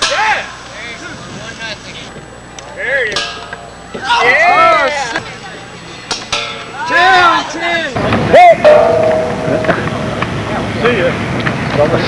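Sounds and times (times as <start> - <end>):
players shouting: 3.9 - 5.4, 6.6 - 12.0
steady held tone: 8.0 - 11.0.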